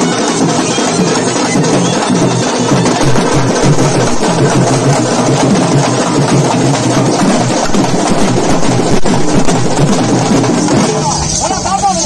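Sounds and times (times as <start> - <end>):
barrel drum: 0.0 - 11.1
folk drumming: 0.0 - 12.0.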